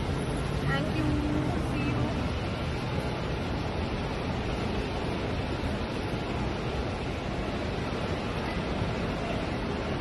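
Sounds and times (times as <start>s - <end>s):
road traffic rumble: 0.0s - 10.0s
voices: 0.6s - 3.3s.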